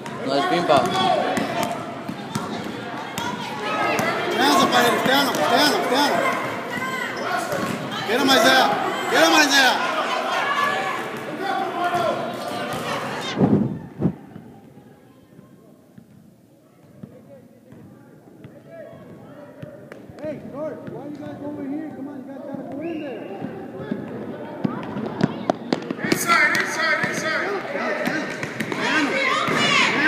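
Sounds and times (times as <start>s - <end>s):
spectators and players voices: 0.0s - 30.0s.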